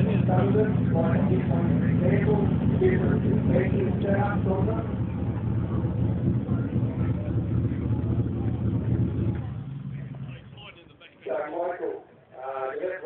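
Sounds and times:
off-road vehicle engine running: 0.0s - 13.0s.

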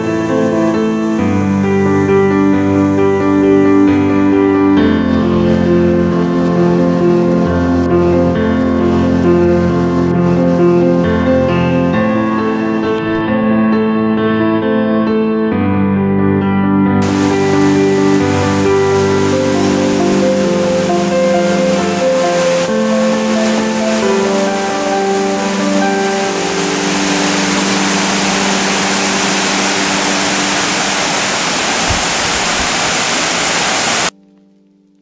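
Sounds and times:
soft keyboard music: 0.0s - 31.3s
flowing water rushing: 17.0s - 34.1s.

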